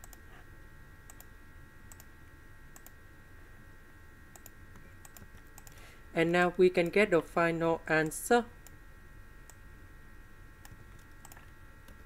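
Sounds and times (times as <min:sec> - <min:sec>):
faint electrical whine: 0:00.0 - 0:12.0
keyboard and mouse clicks: 0:04.4 - 0:05.8, 0:10.6 - 0:12.0.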